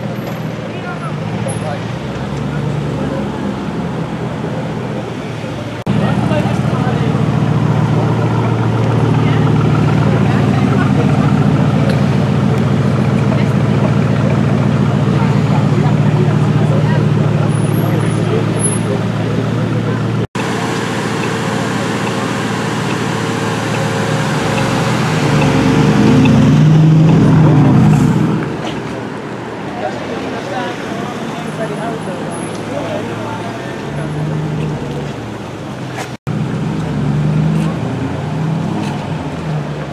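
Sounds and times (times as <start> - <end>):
car engine at low revs: 2.1 - 28.9.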